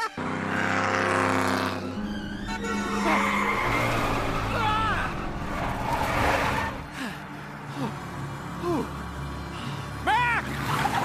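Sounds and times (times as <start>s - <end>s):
race car engine revving: 0.2s - 7.0s
tyres squealing: 1.7s - 7.0s.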